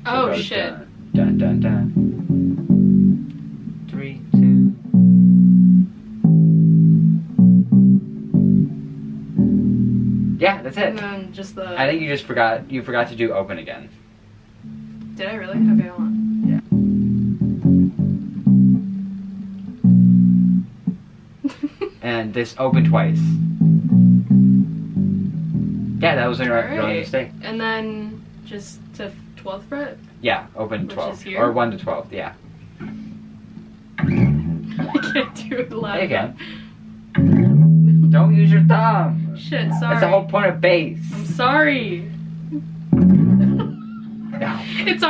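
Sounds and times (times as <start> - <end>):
electric bass guitar riff: 0.0 - 12.7, 14.6 - 21.4, 22.0 - 31.9, 32.6 - 45.0.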